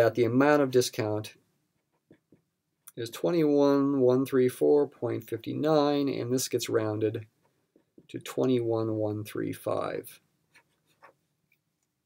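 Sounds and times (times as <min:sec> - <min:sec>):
marker pen writing on paper: 0:01.7 - 0:02.6, 0:10.5 - 0:11.3.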